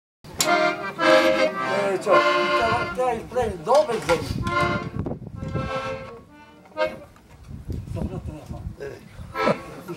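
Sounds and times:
accordion held chords: 0.3 - 3.5, 4.4 - 7.2, 9.3 - 9.9.

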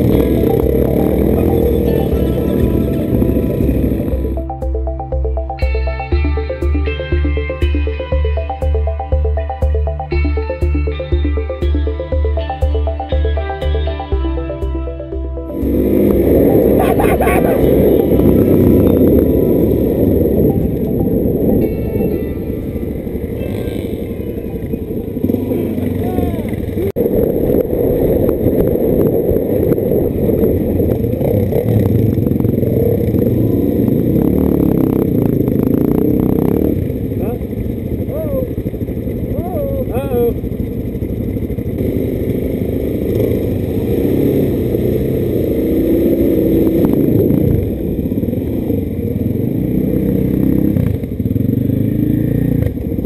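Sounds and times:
motorcycle engine cruising: 0.0 - 53.0
person exclaiming: 16.8 - 17.8, 25.3 - 26.9, 38.1 - 38.6, 39.4 - 40.4
wind on microphone: 17.7 - 32.3.

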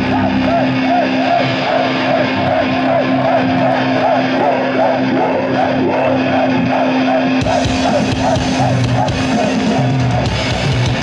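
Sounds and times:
metal band playing without drums: 0.0 - 11.0.

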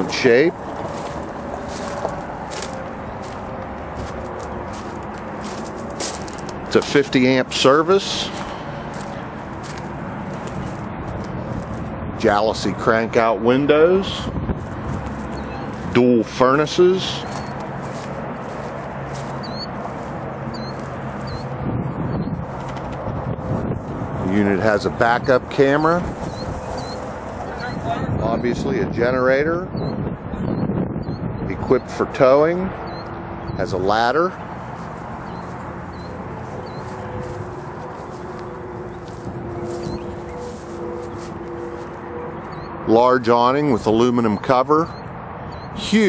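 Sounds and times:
steady low hum: 0.0 - 43.9
bird chirps: 15.3 - 15.8, 17.2 - 17.6, 19.2 - 19.8, 20.5 - 22.3, 26.2 - 28.0, 32.8 - 33.7, 35.2 - 43.0, 43.9 - 45.8.

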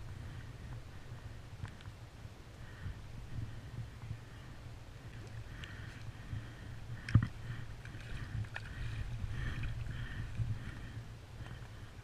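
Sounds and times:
steady low rumble: 0.0 - 12.0
water splashing and sloshing: 5.1 - 11.0.

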